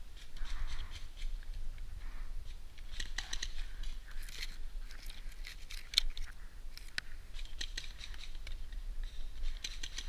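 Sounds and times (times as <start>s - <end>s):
dry grass rustling and crackling: 0.0s - 10.0s.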